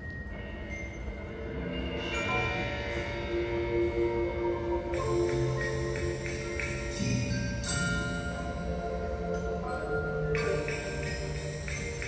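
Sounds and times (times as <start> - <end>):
concert band sustained chords: 0.4 - 12.0.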